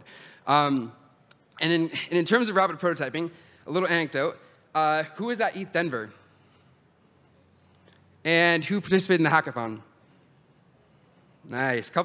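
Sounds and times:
man speaking: 0:00.0 - 0:06.2, 0:08.2 - 0:09.9, 0:11.4 - 0:12.0.

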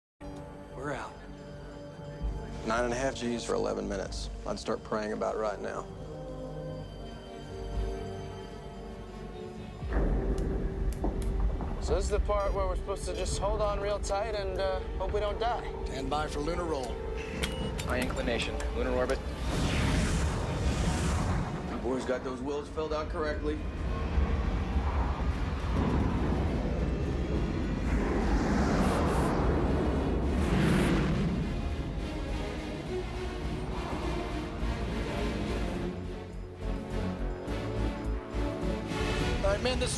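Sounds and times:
orchestral score: 0:00.3 - 0:39.9
deep steady rumble: 0:20.2 - 0:36.6
spacecraft roars: 0:23.6 - 0:35.5.

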